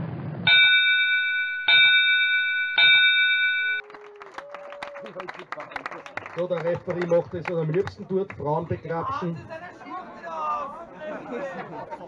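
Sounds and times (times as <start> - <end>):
low explosion rumble: 0.0 - 0.6
ring bell struck: 0.5 - 3.8.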